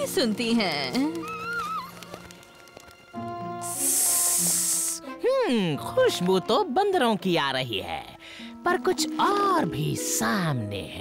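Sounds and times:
background music with held notes: 0:00.0 - 0:11.0
snake hissing: 0:03.6 - 0:05.2.

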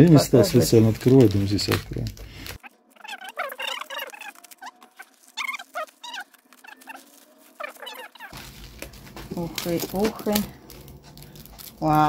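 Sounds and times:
plastic packaging rustling: 0:00.0 - 0:12.0
scissors cutting plastic: 0:00.0 - 0:12.0.

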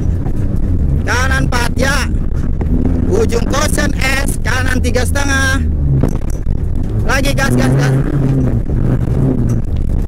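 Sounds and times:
car engine at full throttle: 0:00.0 - 0:10.0
rumble of tires on dirt: 0:00.0 - 0:10.0.

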